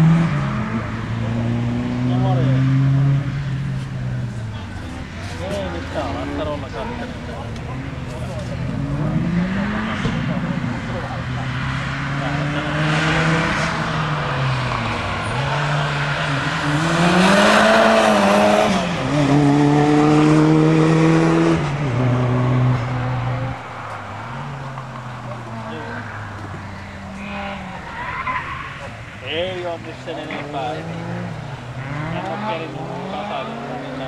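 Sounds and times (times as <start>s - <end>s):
car engine driven hard: 0.0s - 34.0s.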